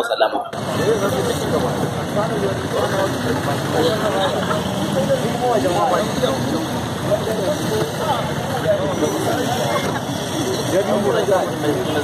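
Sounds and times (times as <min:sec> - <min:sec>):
people talking: 0:00.0 - 0:12.0
street and vehicle noise: 0:00.0 - 0:12.0.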